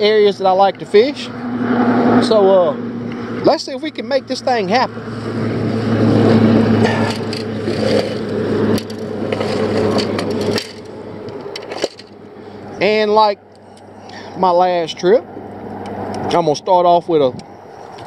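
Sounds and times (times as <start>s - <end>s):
low hum: 0.0s - 16.3s
traffic rushing: 0.0s - 18.0s
fishing gear clicks and scrapes: 6.8s - 12.2s.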